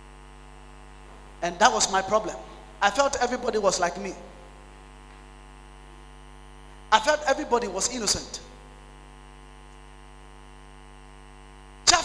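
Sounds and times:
electrical mains hum: 0.0s - 12.0s
man talking: 1.4s - 4.4s, 6.9s - 8.5s.

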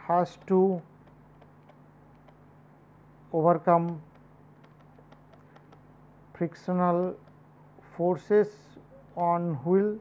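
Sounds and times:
steady low hum: 0.0s - 10.0s
pen ticking on tablet: 0.1s - 2.4s, 3.5s - 5.9s, 6.8s - 7.4s.

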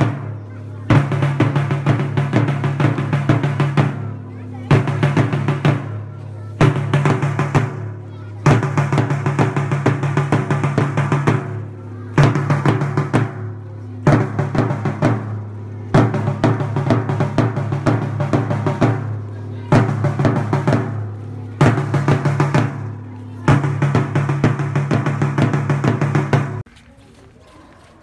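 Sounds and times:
snare and bass drums: 0.0s - 26.7s.

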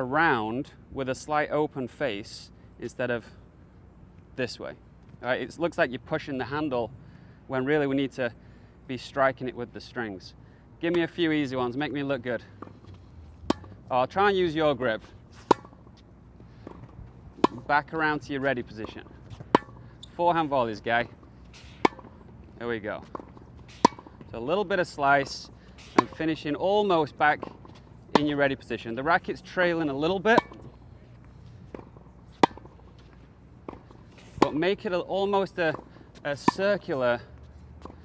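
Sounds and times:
racket hitting tennis ball: 12.5s - 13.9s, 14.6s - 36.8s.

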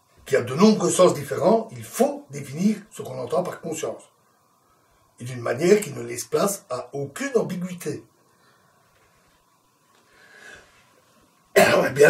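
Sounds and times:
faint soft breath: 8.3s - 9.3s, 10.0s - 11.0s
man coughing: 11.6s - 11.9s.

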